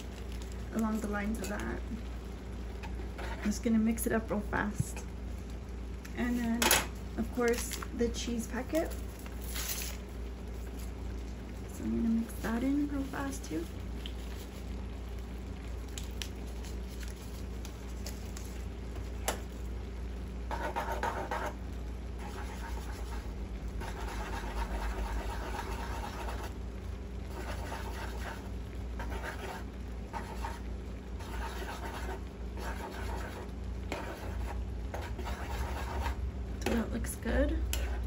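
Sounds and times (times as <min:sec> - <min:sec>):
low steady hum: 0:00.0 - 0:38.0
spatula scraping frying pan: 0:03.0 - 0:03.6, 0:27.3 - 0:36.2, 0:37.7 - 0:38.0.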